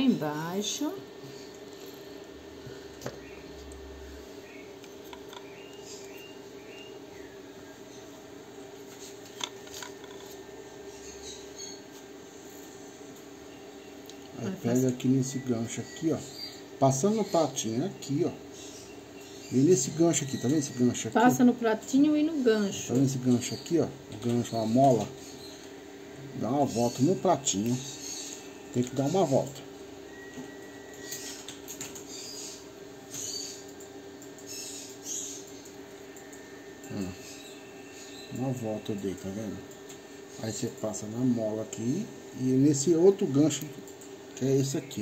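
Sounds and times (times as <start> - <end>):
steady low hum: 0.0 - 45.0.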